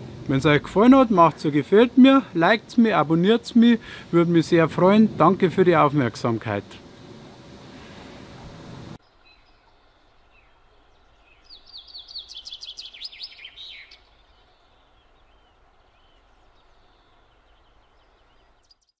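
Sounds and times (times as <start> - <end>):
songbird singing fast run: 0.0 - 6.9, 9.0 - 19.0
faint bird chirps: 9.0 - 19.0.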